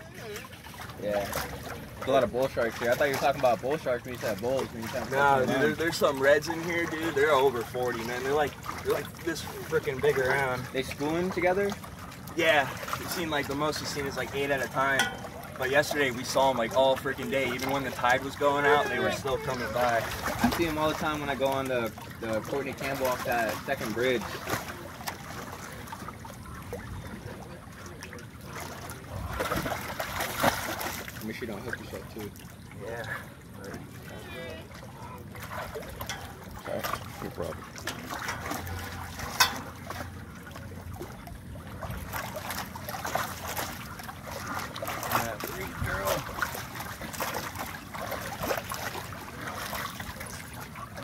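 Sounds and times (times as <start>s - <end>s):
fish splashing in water: 0.0s - 51.0s
water sloshing and trickling: 0.0s - 51.0s.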